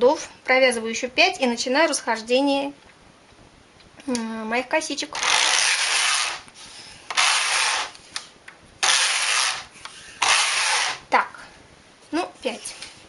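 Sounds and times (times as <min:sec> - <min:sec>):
knitting machine carriage sliding: 0:05.2 - 0:06.4, 0:07.1 - 0:08.0, 0:08.8 - 0:11.0.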